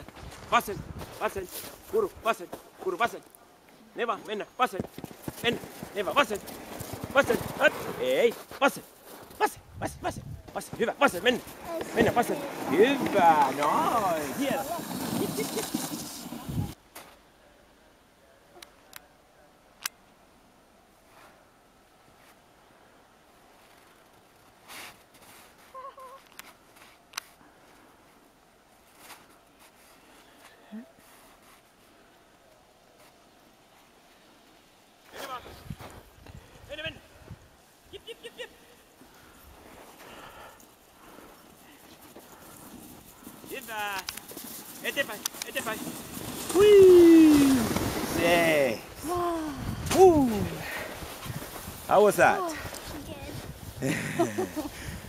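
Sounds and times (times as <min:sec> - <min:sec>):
paws pattering on snow: 0:00.0 - 0:03.0, 0:04.2 - 0:09.4, 0:10.4 - 0:16.8, 0:39.0 - 0:48.8, 0:50.7 - 0:55.0
harness moving: 0:10.5 - 0:16.8, 0:41.4 - 0:49.1.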